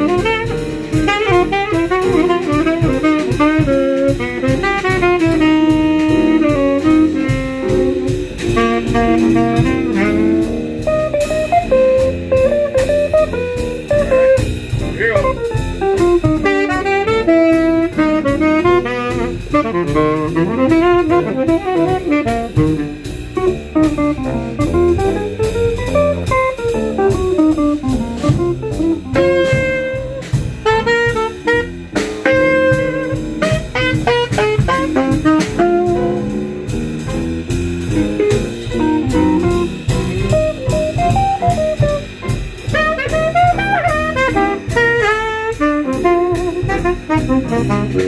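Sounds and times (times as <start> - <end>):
fast improvised solo: 0.0 - 48.0
jazz band playing blues: 0.0 - 48.0.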